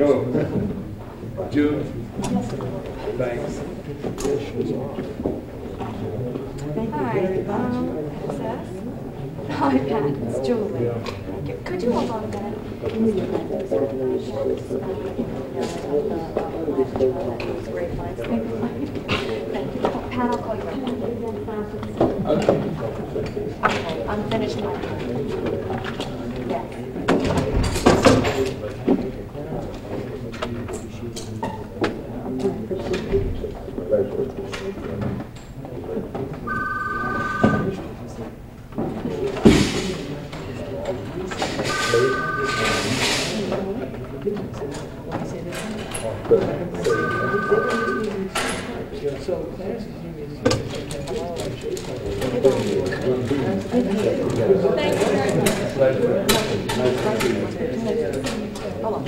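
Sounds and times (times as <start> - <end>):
overlapping talk of people: 0.0 - 59.0.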